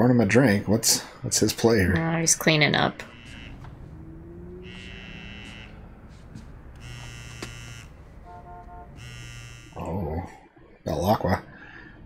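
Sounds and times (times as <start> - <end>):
electric buzz pulses: 3.0 - 9.9.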